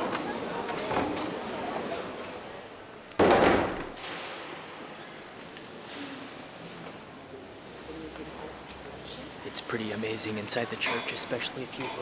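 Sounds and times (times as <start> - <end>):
heavy wooden door banging shut: 3.2 - 4.0.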